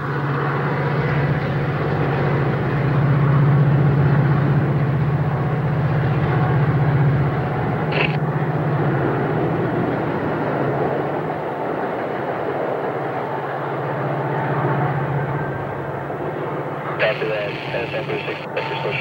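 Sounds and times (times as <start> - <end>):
wheels rumbling on rails: 0.0 - 18.8
locomotive engine drone: 0.0 - 19.0.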